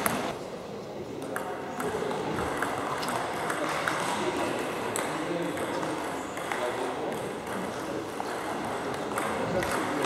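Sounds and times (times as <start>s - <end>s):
table tennis ball hits: 0.0s - 0.3s, 1.2s - 10.0s.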